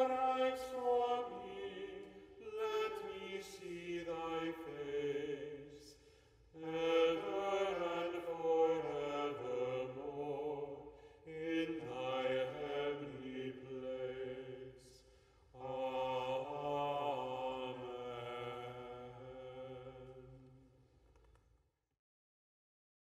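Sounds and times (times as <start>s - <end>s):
voices singing a slow chant: 0.0s - 20.8s.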